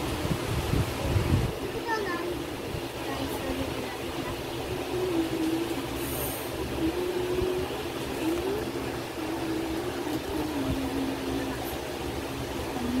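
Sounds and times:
background hiss: 0.0 - 13.0
faint wandering tune: 1.7 - 13.0.

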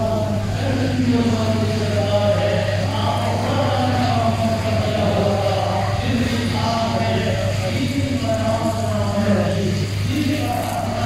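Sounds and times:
man chanting: 0.0 - 11.0
steady low hum: 0.0 - 11.0.

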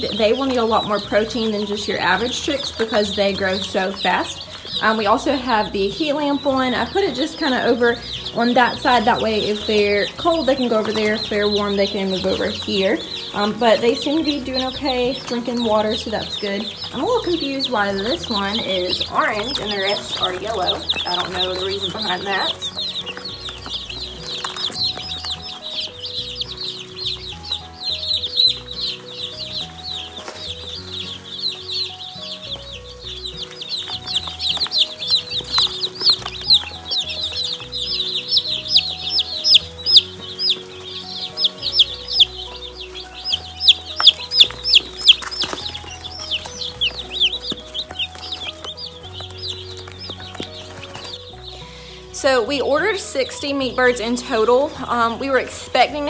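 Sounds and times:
background music: 0.0 - 56.0
chicks peeping: 0.0 - 56.0.

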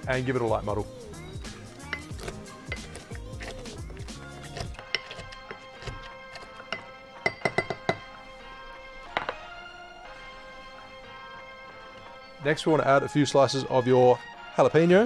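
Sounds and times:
background music: 0.0 - 15.0
muddler thudding in a glass: 6.7 - 8.1.

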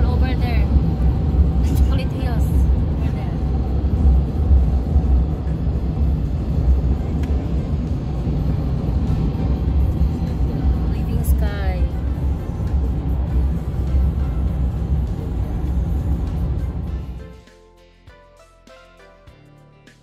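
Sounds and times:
road and wind rumble in car: 0.0 - 17.4
background music: 0.0 - 20.0.

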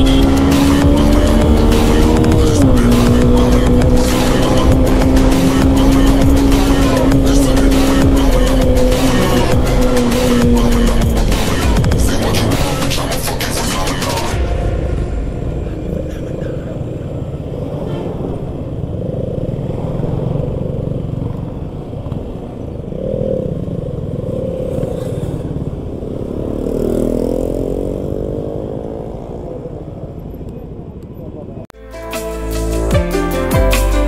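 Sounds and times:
motorcycle engine running: 0.0 - 14.6, 15.4 - 28.4
surrounding traffic: 0.0 - 34.0.

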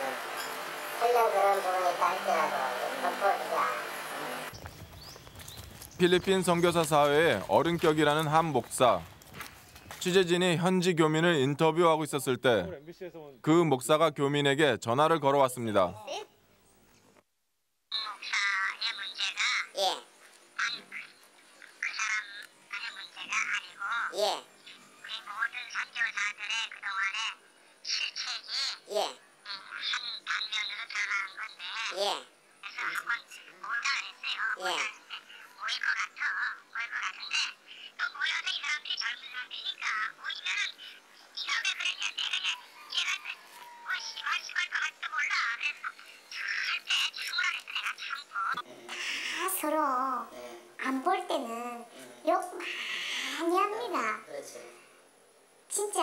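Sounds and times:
man speaking: 6.0 - 9.1, 10.0 - 16.2.

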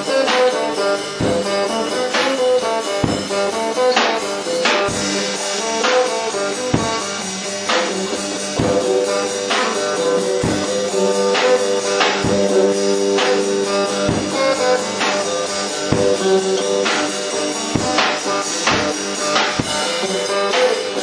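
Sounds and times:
drum kit beat: 0.0 - 21.0
guitar notes: 0.0 - 21.0.

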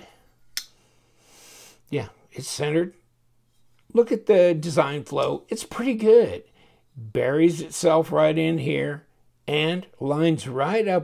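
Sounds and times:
faint soft hiss: 0.0 - 11.0.

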